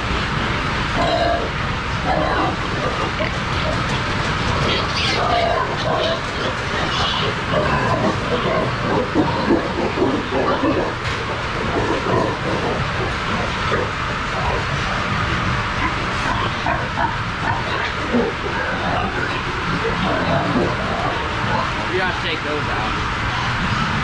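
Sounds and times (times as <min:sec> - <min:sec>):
steady background rumble: 0:00.0 - 0:24.0
pigs grunting: 0:00.3 - 0:24.0.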